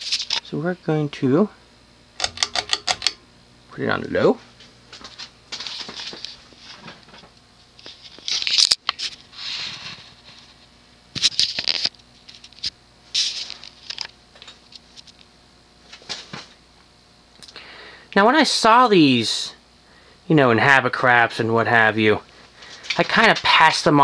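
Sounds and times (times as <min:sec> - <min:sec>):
ceiling fan humming: 0:00.0 - 0:24.0
sharp click: 0:02.2 - 0:03.2.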